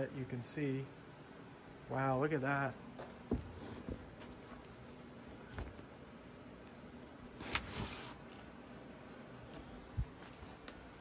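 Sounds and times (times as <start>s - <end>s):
rustling scrape: 6.8s - 8.6s.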